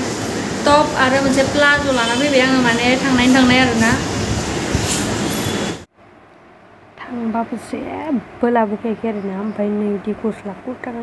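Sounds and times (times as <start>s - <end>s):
loud rushing noise: 0.0s - 5.9s.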